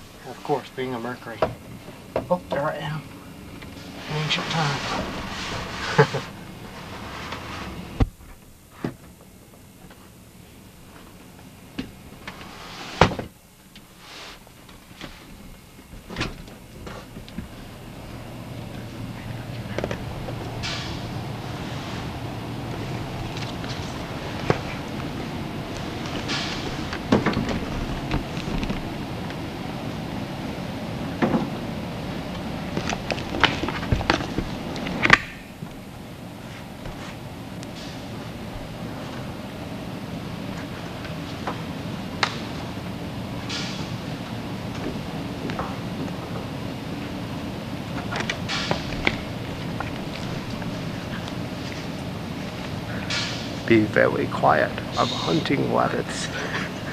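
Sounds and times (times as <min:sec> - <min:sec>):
rustling of person climbing: 0:36.3 - 0:37.5.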